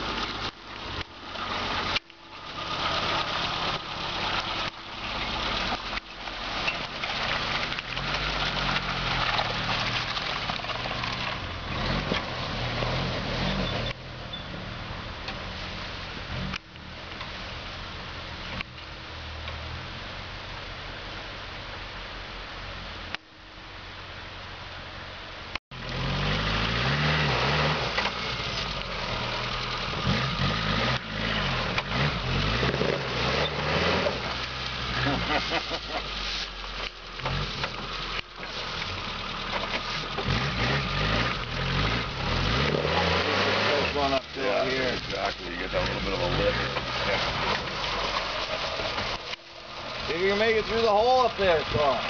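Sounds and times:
engine pulling under load: 0.0 - 17.6, 25.7 - 52.0
tires churning through leaves: 0.0 - 52.0.

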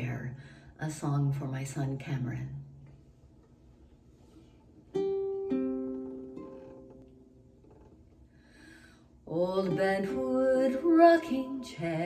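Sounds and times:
ukulele strings plucked: 4.9 - 8.0.

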